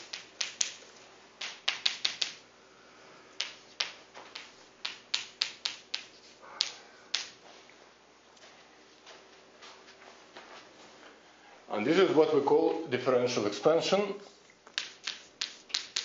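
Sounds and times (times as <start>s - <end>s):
chalk tapping on blackboard: 0.0s - 0.8s, 1.4s - 2.4s, 3.4s - 7.3s, 14.6s - 16.0s
chalk scratching on blackboard: 14.8s - 16.0s.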